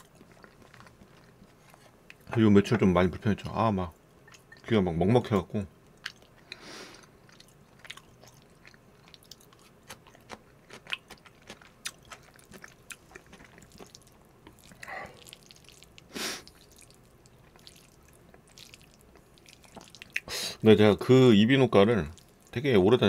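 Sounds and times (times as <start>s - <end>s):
chewing crunches: 0.0s - 2.3s, 6.0s - 20.3s.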